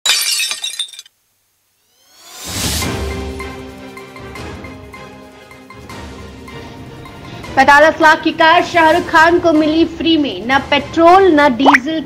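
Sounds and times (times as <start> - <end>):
glass shattering: 0.0 - 1.1.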